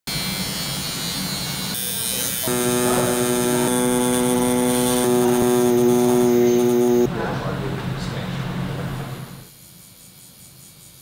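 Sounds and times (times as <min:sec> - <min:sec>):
tattoo machine buzzing: 0:00.1 - 0:07.1.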